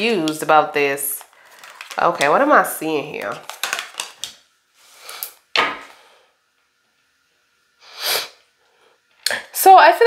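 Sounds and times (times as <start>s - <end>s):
cards rustling: 1.2s - 2.4s, 3.2s - 4.4s.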